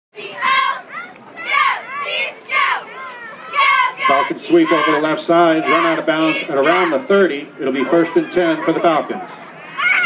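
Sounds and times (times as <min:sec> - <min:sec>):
cheerleaders shouting: 0:00.2 - 0:10.0.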